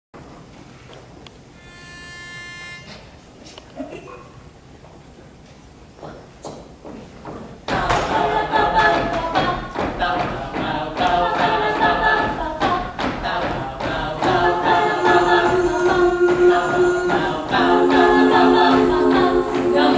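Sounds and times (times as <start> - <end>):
steady high note: 1.5 - 3.3
women singing in harmony: 7.7 - 19.9.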